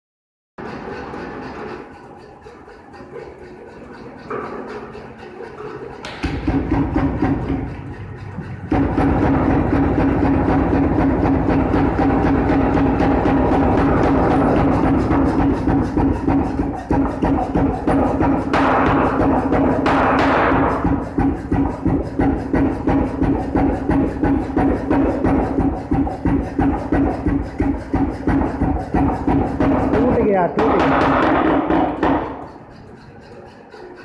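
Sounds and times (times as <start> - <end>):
machinery hum: 0.6 - 34.0
power hammer pounding: 0.6 - 34.0.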